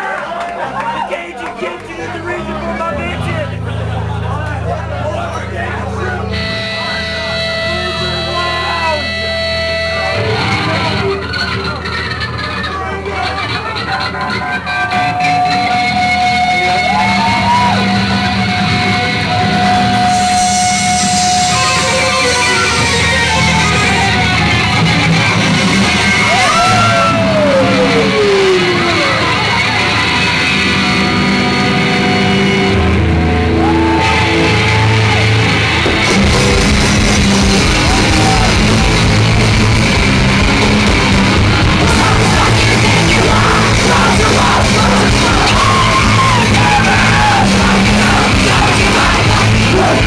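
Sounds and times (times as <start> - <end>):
punk band playing live: 0.0 - 50.0
held electric guitar notes: 1.8 - 12.4, 14.1 - 50.0.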